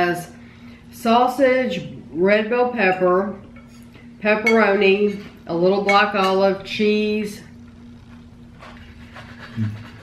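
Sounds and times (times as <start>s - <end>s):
faint steady hum: 0.0s - 10.0s
knife and fork scraping on plate: 3.6s - 5.3s, 8.6s - 10.0s
person humming while chewing: 9.5s - 10.0s.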